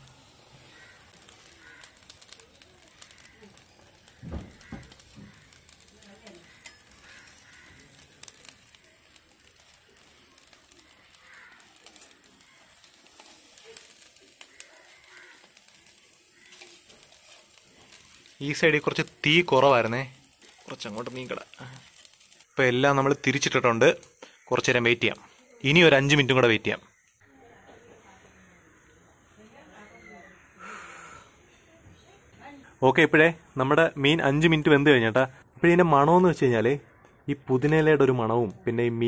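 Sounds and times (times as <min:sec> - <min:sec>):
metal spatula scraping grill mesh: 0:00.0 - 0:26.4.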